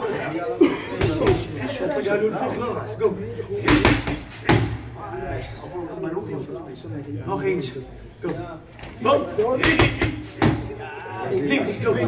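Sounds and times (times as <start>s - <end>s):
low voices talking: 0.0s - 12.0s.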